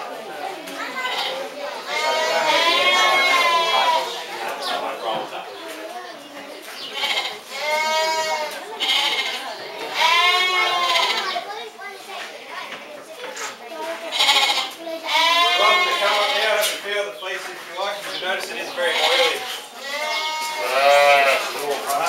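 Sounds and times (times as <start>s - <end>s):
sheep bleating: 1.0s - 4.2s, 7.0s - 11.4s, 14.1s - 16.6s, 18.8s - 21.6s.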